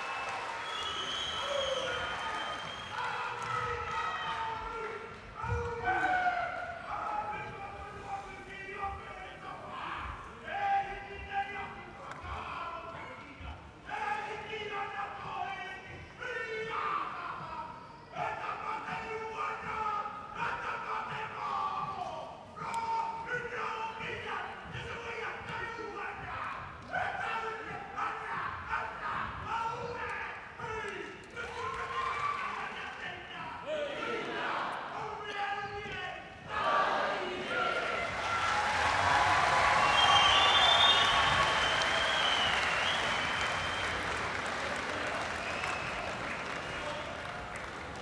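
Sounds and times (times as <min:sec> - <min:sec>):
whistles: 0:00.0 - 0:03.3, 0:39.6 - 0:47.3
crowd applauding and cheering: 0:00.0 - 0:08.3, 0:37.5 - 0:48.0.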